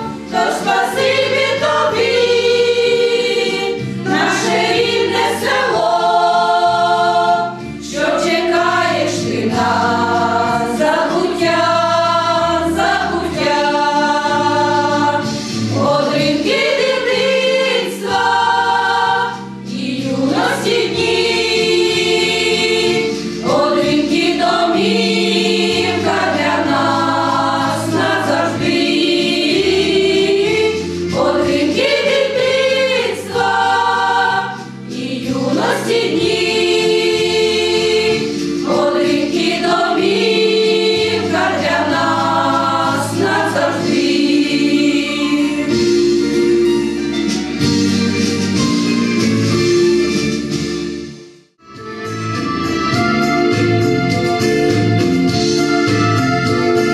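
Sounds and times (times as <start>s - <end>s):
women's choir singing: 0.0s - 46.2s.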